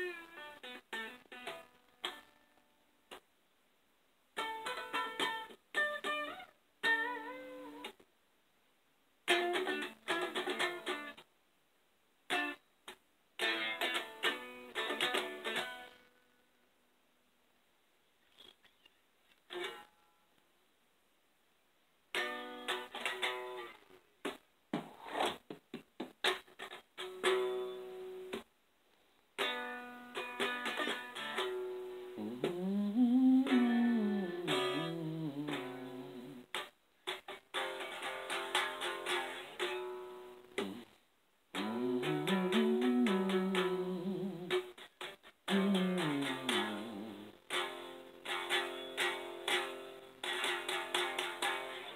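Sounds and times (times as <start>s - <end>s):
plucked guitar notes: 0.0s - 2.4s, 4.4s - 8.0s, 9.3s - 11.2s, 13.4s - 16.0s, 22.1s - 23.8s, 26.2s - 28.5s, 29.4s - 40.9s, 41.5s - 51.9s.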